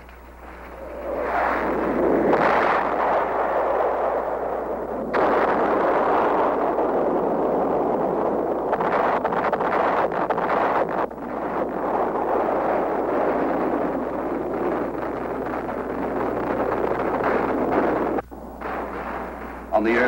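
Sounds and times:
explosions roaring: 0.0s - 20.0s
sharp cracks: 0.0s - 20.0s
sustained rumble: 0.0s - 20.0s.

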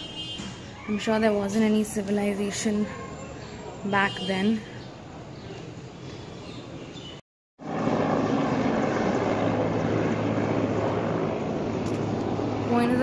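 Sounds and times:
outdoor background rumble: 7.6s - 13.0s.

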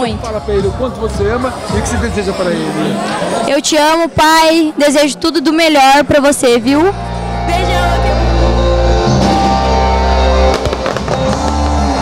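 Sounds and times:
music: 0.0s - 3.3s, 5.4s - 12.0s
fireworks bangs and crackles: 9.2s - 12.0s.

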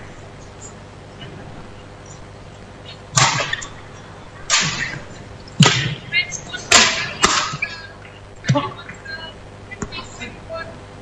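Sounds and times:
badminton racket hitting shuttlecock: 3.2s - 3.7s, 4.5s - 5.0s, 5.6s - 6.0s, 6.7s - 7.7s.

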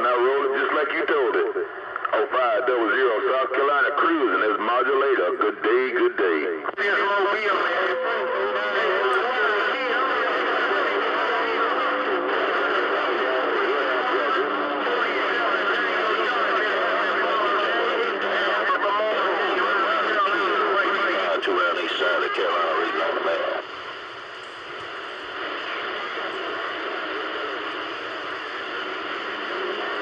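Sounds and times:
garbled radio voices: 0.0s - 30.0s
steady low radio tones: 0.0s - 30.0s.

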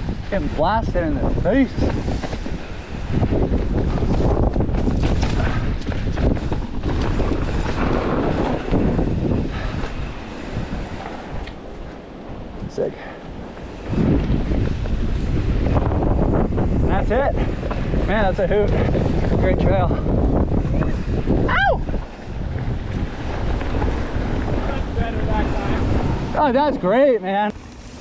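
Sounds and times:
bike rattling and knocking: 0.0s - 11.6s, 13.4s - 26.7s
wind buffeting microphone: 0.0s - 28.0s
person shouting: 21.4s - 21.9s.

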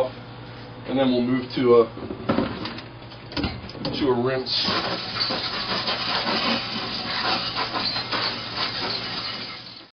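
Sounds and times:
water spraying from rinse hose: 4.6s - 9.9s.

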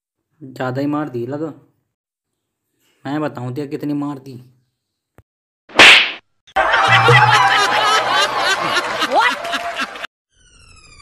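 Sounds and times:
loud slap: 5.7s - 6.2s.

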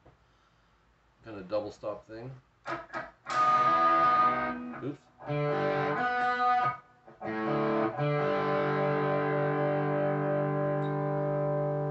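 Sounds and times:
electric guitar double stops: 2.7s - 11.9s.

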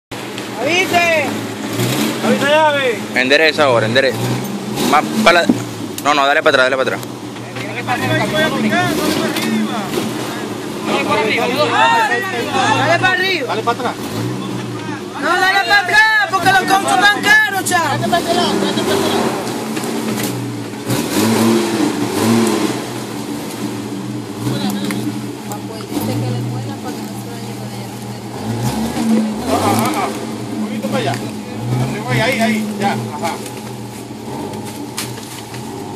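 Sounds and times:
suv engine running at low revs: 0.1s - 35.9s.

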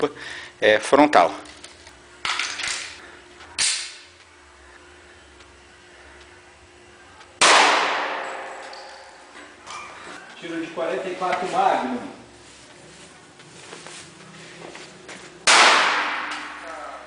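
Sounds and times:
loud echoing gunshot: 7.4s - 8.6s, 15.4s - 16.6s.

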